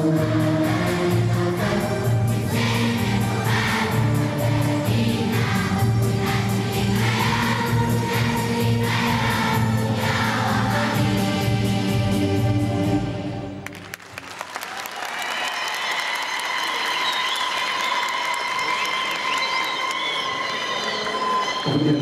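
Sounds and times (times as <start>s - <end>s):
children's choir singing: 0.0s - 13.6s.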